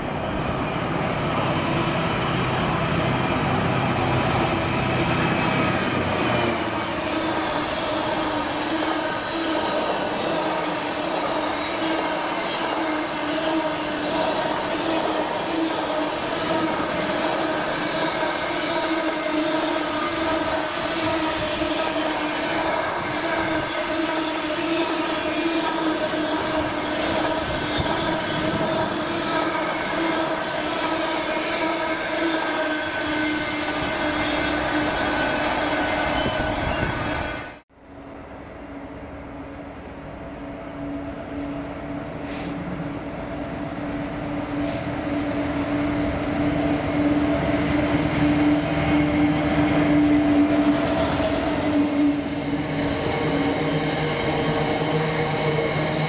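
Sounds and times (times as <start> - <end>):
rumble of train wheels on rail: 33.7 - 56.0.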